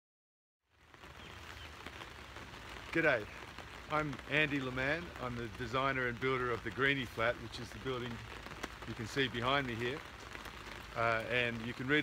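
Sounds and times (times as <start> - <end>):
light rain hissing: 0.7 - 12.0.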